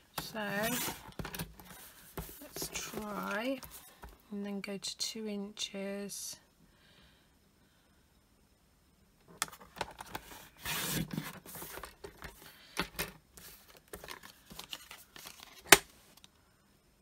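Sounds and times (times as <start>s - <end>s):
card pieces clicking and rustling: 0.2s - 3.8s.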